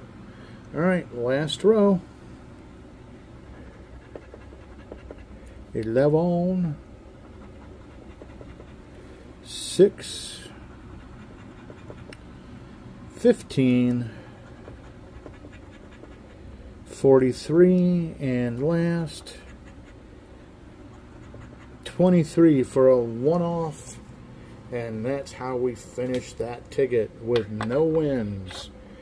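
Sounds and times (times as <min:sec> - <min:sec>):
coin scratching lottery ticket: 0:03.6 - 0:05.3, 0:07.1 - 0:08.8, 0:11.0 - 0:12.2, 0:14.4 - 0:16.4
coin scraping scratch card: 0:03.8 - 0:05.3, 0:07.2 - 0:08.8.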